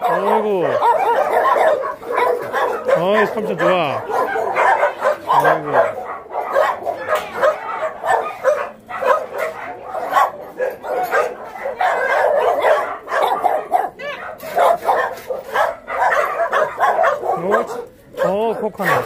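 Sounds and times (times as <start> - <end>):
many dogs barking and yipping: 0.0 - 19.0.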